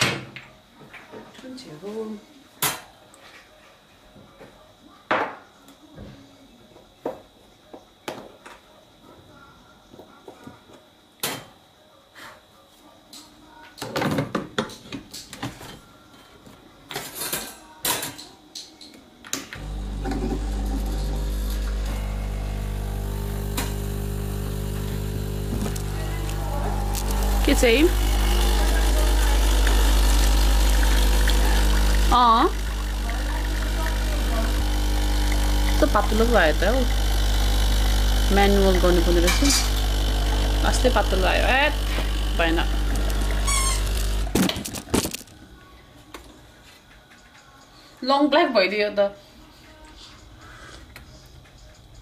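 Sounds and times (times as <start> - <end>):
espresso pump humming: 19.6 - 45.1.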